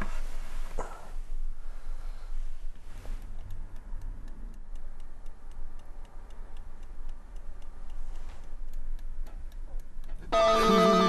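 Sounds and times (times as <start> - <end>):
alarm clock ticking: 3.4 - 11.0.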